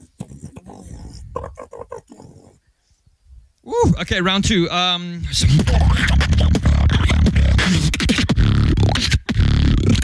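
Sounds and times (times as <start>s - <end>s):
person beatboxing: 0.0s - 2.0s, 5.2s - 10.0s.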